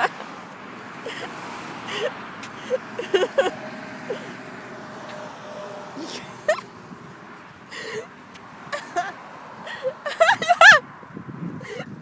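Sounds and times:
vehicle passing by: 0:00.0 - 0:11.6
road traffic noise: 0:00.0 - 0:12.0.

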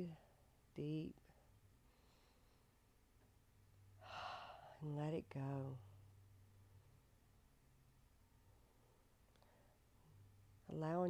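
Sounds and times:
faint low hum: 0:00.0 - 0:11.0
deep breath: 0:01.8 - 0:02.8, 0:04.0 - 0:04.8, 0:08.7 - 0:09.8
person speaking: 0:10.7 - 0:11.0.

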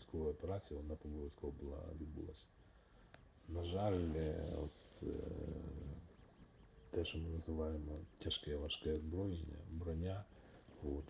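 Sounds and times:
man speaking: 0:00.0 - 0:02.6, 0:03.4 - 0:06.1, 0:06.9 - 0:11.0.

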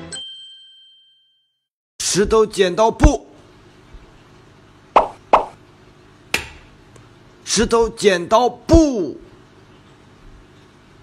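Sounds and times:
bright chime ding: 0:00.1 - 0:01.6.

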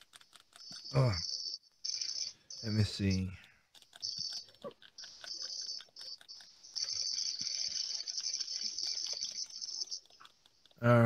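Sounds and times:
keyboard and mouse clicks: 0:00.0 - 0:01.0, 0:03.4 - 0:10.8.

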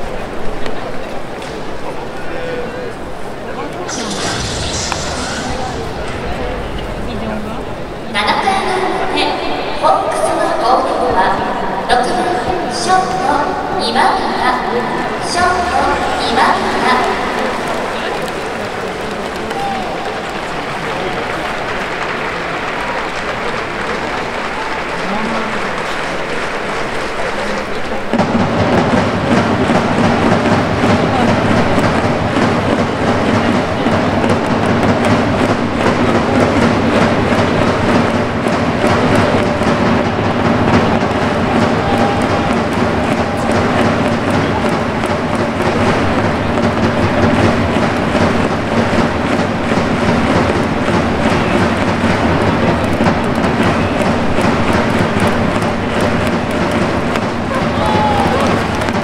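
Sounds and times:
rhythmic crowd noise: 0:00.0 - 0:59.0.

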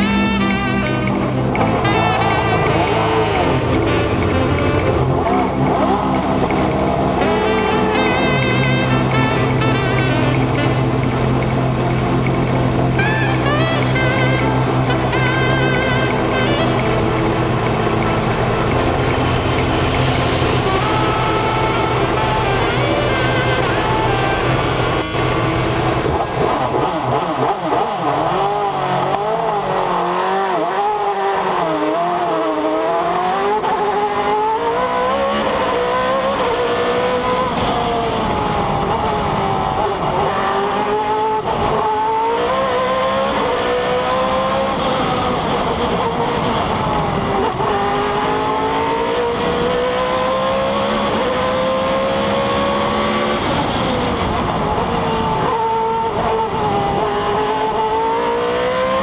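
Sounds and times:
race car engine accelerating: 0:00.0 - 0:59.0.

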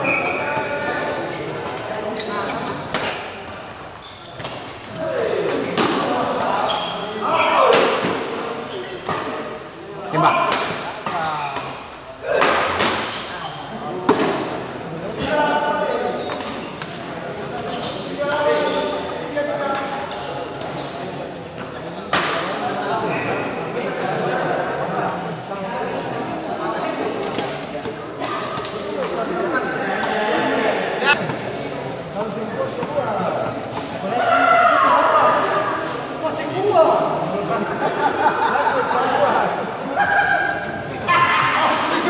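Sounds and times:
voices of players and spectators: 0:00.0 - 0:42.0.

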